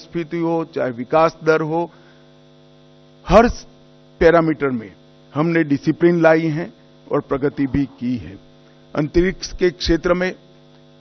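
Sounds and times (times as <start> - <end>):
man speaking: 0.0 - 1.9, 3.3 - 10.4
faint electrical mains hum: 0.0 - 11.0.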